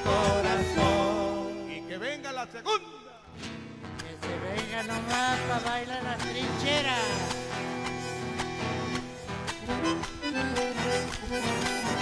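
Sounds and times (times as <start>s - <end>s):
bass drum beat: 0.0s - 1.4s
bandoneons playing melody: 0.0s - 2.6s, 4.4s - 12.0s
guitar: 0.0s - 12.0s.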